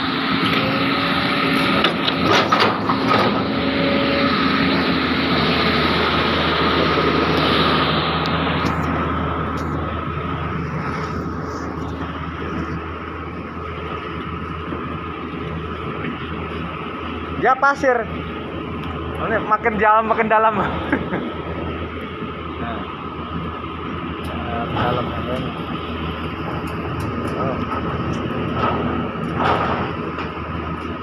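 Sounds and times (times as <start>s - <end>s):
diesel engine running: 0.0s - 31.0s
thin steady whine: 0.0s - 31.0s.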